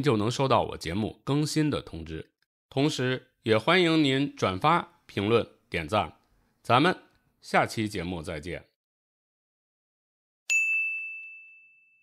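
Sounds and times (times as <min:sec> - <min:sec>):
bright ding: 0:10.5 - 0:12.0.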